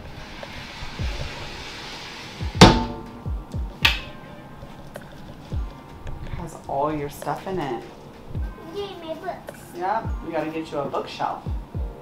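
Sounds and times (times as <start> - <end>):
sliding closet doors rolling: 0.0 - 3.0
sliding doors banging on stops: 0.4 - 3.2.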